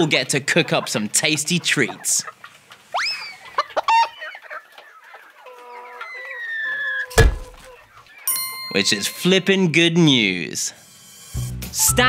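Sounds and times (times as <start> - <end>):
hens clucking: 0.0 - 9.4
loud thump: 7.2 - 7.6.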